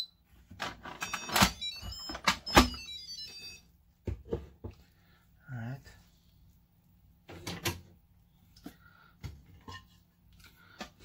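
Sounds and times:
electronic jingle: 0:01.0 - 0:03.7.

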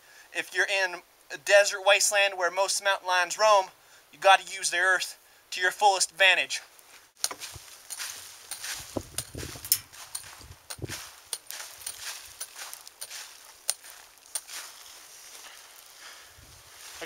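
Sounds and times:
hand pick striking dirt: 0:07.2 - 0:14.8
loose earth falling: 0:07.2 - 0:17.0.

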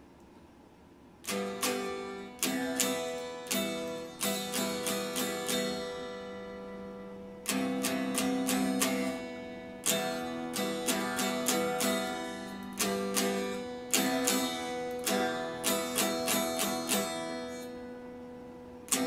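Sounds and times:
electric guitar chords strummed: 0:01.2 - 0:19.0.

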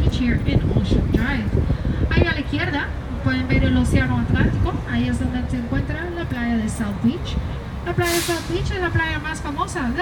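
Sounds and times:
bus engine rumble: 0:00.0 - 0:10.0
air brakes hiss: 0:08.0 - 0:08.7.

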